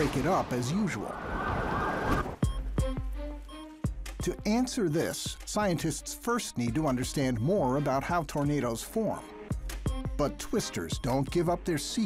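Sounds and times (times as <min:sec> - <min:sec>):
rushing noise: 0:00.0 - 0:02.4.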